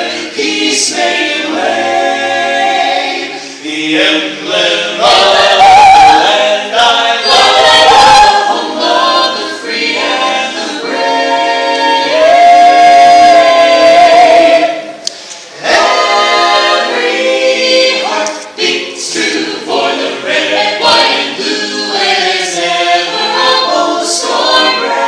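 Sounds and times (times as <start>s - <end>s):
vocal ensemble singing in harmony: 0.0s - 25.0s.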